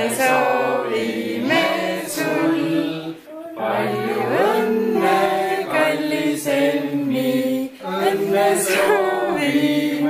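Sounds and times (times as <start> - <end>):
group singing unaccompanied: 0.0 - 10.0.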